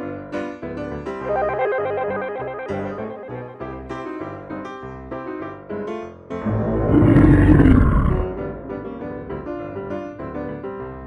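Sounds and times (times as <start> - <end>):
piano background music: 0.0 - 6.9, 8.2 - 11.0
monster roar: 6.4 - 8.9.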